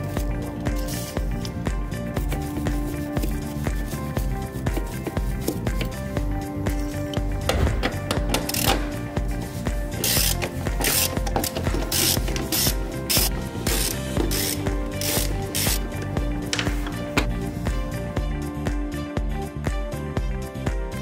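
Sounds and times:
background music with steady beat: 0.0s - 21.0s
socket wrench on nuts: 8.0s - 9.0s, 10.0s - 15.8s.

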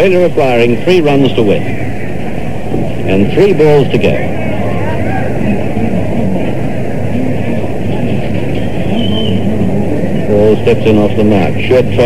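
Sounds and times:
crowd hubbub on old radio: 0.0s - 12.0s
faint voices: 0.0s - 12.0s.

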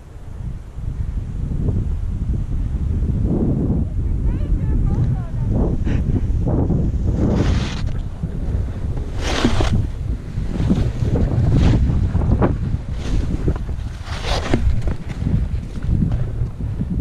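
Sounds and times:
wind rumble on microphone: 0.0s - 17.0s
skis scraping over snow: 6.9s - 17.0s.

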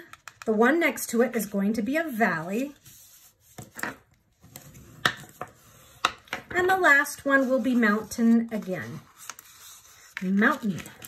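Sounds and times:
card folding clicks and taps: 0.0s - 0.5s.

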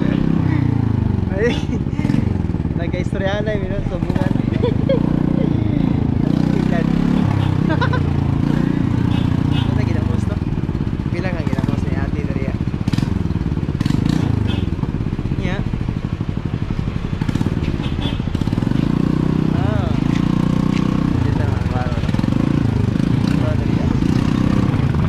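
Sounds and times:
motorcycle engine revving: 0.0s - 25.0s.

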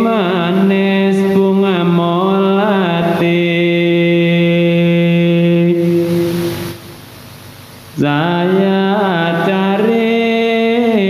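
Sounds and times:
person singing long note: 0.0s - 7.0s.

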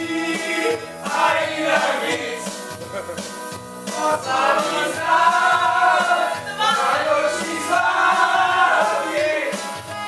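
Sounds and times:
men singing together: 0.0s - 2.8s, 3.9s - 9.9s
karaoke backing track: 0.0s - 10.0s.

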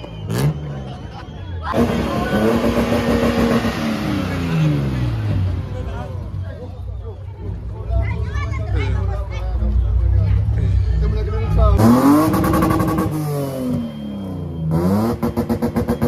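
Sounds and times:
crowd voices: 0.0s - 16.0s
car engine revving: 1.7s - 6.4s, 10.4s - 16.0s.

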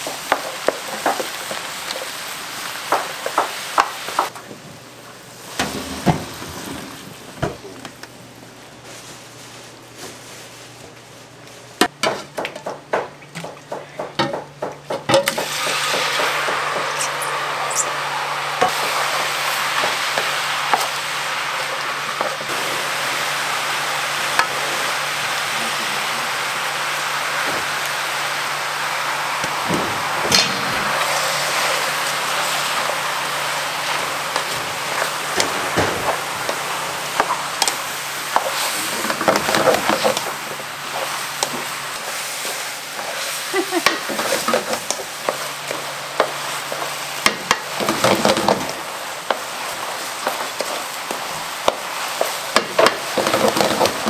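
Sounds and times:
vegetables sizzling in a frying pan: 0.0s - 12.0s, 15.2s - 54.0s
spatula knocking and scraping pan: 11.8s - 17.4s.

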